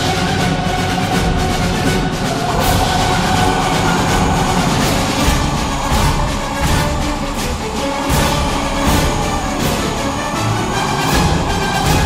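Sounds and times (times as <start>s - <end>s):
dramatic soundtrack drone: 0.0s - 12.0s.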